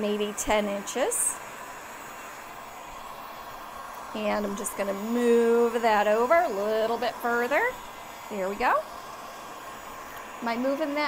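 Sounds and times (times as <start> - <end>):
heat gun blowing: 0.0 - 11.0.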